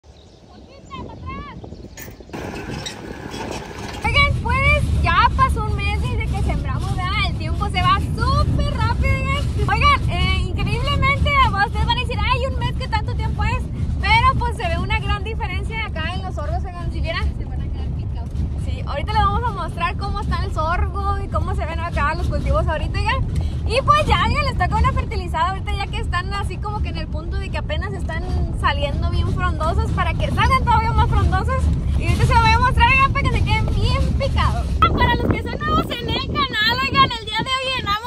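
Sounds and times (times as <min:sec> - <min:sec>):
vehicle rumble from inside cab: 0:02.3 - 0:38.0
woman speaking: 0:04.0 - 0:38.0.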